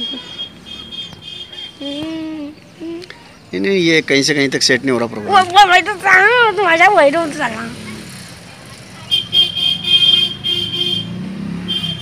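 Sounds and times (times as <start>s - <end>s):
vehicle horn pulses: 0.0s - 1.9s, 9.1s - 12.0s
engine rumble: 0.0s - 12.0s.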